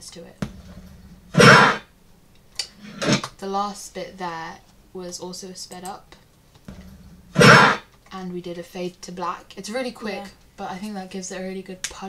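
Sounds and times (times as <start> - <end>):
woman's vocal burst: 1.4 - 1.8.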